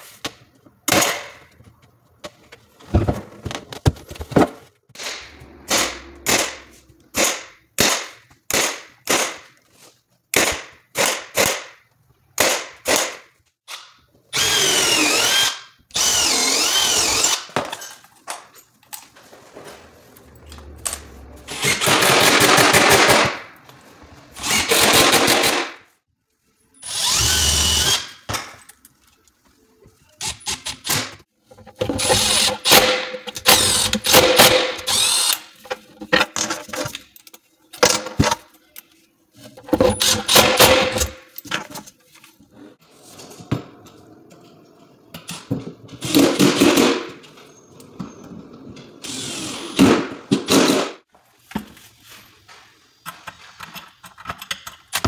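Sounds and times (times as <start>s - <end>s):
knocks and handling sounds: 0.0s - 7.2s, 31.2s - 48.9s, 50.3s - 55.0s
cordless screw gun rattling: 32.0s - 35.4s.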